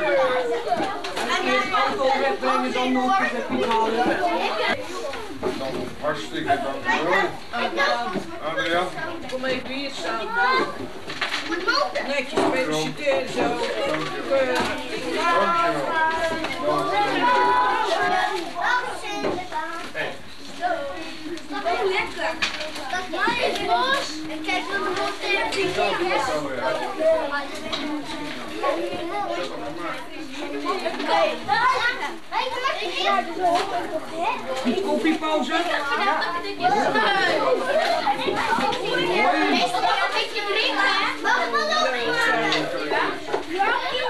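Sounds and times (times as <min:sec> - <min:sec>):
children chattering and calling out: 0:00.0 - 0:44.0.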